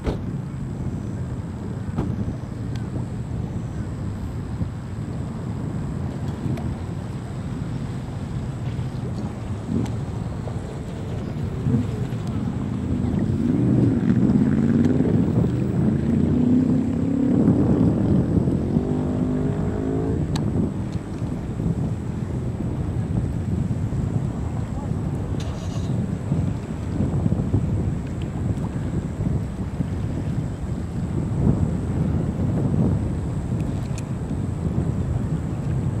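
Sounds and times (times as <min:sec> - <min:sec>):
wind buffeting microphone: 0:00.0 - 0:36.0
people's voices: 0:10.5 - 0:13.9, 0:24.3 - 0:26.0.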